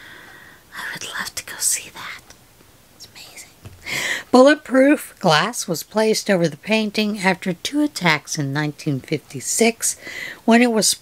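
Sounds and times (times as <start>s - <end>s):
faint breathy noise: 0.0s - 2.2s, 3.1s - 4.4s, 10.0s - 10.5s
woman speaking: 4.3s - 11.0s.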